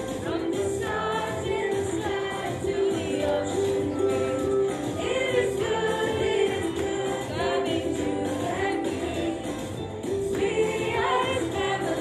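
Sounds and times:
choir singing gospel song: 0.0 - 12.0
gospel music: 0.0 - 12.0.

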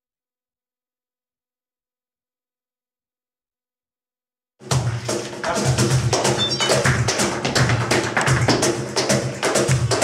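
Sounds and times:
flamenco guitar music: 6.0 - 10.0.

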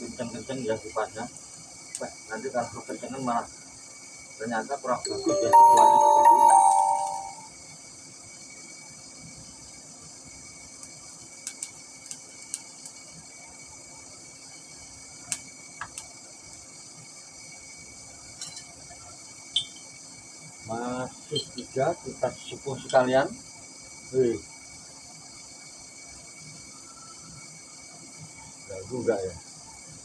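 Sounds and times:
faint high hiss: 4.3 - 7.5
ringing chime: 5.1 - 7.5.

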